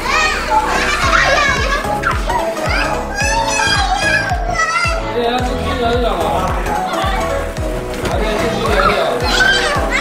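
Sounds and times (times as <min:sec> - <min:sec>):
young children's voices: 0:00.0 - 0:05.9, 0:06.6 - 0:07.5, 0:08.5 - 0:10.0
pop music with drum beat: 0:00.7 - 0:10.0.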